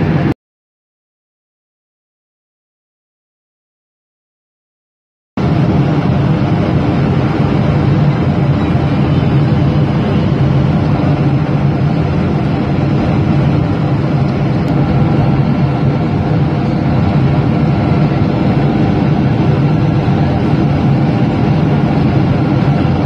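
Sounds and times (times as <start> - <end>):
jet airliner cabin hum: 0.0 - 0.4, 5.4 - 23.0.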